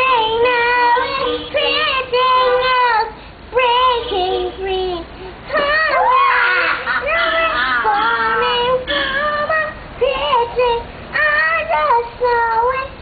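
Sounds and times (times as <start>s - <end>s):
girl singing into a seashell: 0.0s - 13.0s.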